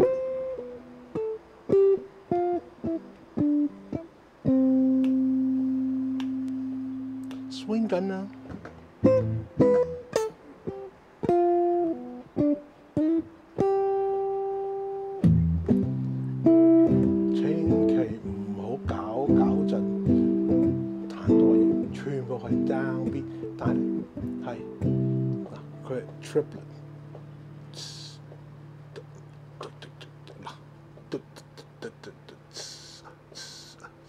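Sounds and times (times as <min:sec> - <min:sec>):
electric guitar playing jazz: 0:00.0 - 0:33.8.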